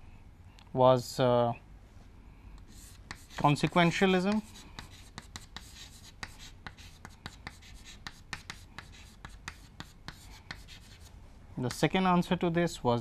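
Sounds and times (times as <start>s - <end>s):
chalk writing on chalkboard: 2.6s - 11.1s, 11.7s - 11.9s.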